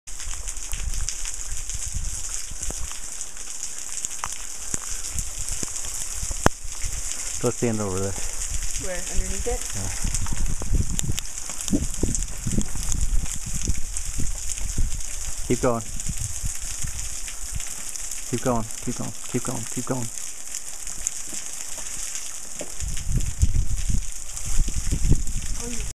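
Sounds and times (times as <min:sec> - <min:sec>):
water drops pattering on rock: 0:00.2 - 0:15.3, 0:16.7 - 0:25.2
dull low thumps: 0:05.2 - 0:17.6, 0:22.7 - 0:25.6.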